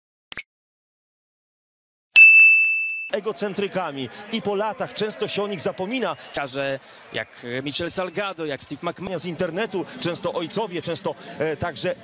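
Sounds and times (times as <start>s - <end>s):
bright bell ding: 2.2s - 3.2s.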